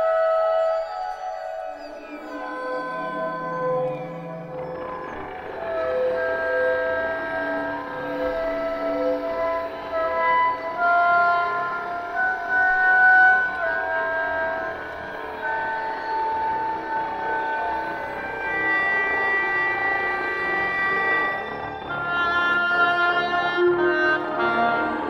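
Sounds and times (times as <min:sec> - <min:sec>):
oboe long held tones: 0:00.0 - 0:25.0.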